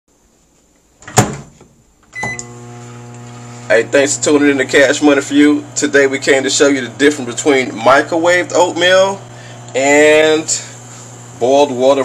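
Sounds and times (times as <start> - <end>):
door shutting: 1.0 - 2.5.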